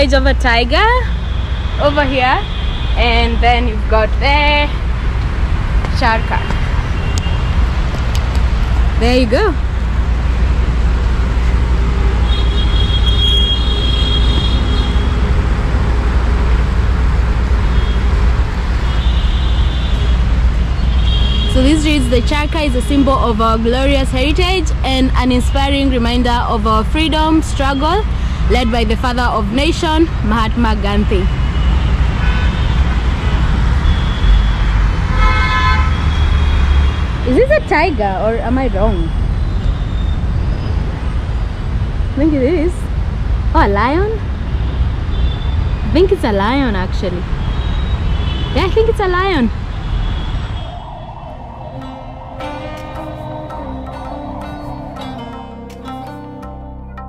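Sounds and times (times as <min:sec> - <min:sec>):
city traffic rumble: 0:00.0 - 0:57.0
vehicle horns honking: 0:12.1 - 0:15.5, 0:17.6 - 0:22.9, 0:31.1 - 0:33.2, 0:33.9 - 0:38.0
thin high-pitched tone: 0:50.6 - 0:57.0.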